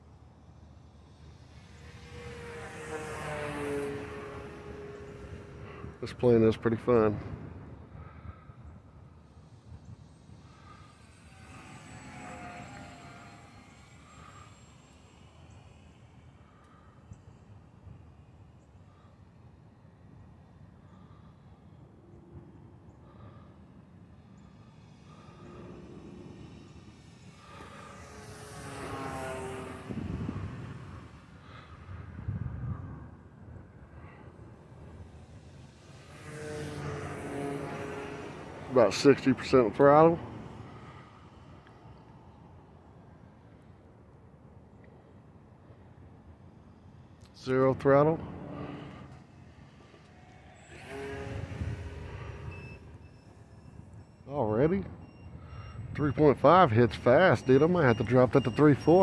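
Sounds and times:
model plane motor buzzing: 0:00.4 - 0:06.0, 0:07.3 - 0:19.6, 0:23.0 - 0:39.6, 0:46.5 - 0:54.3.

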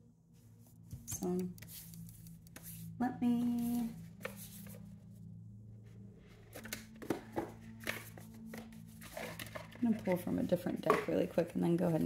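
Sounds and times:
steady low hum: 0:00.0 - 0:12.0
cards being handled: 0:01.0 - 0:02.9, 0:03.6 - 0:04.8, 0:06.5 - 0:11.2.

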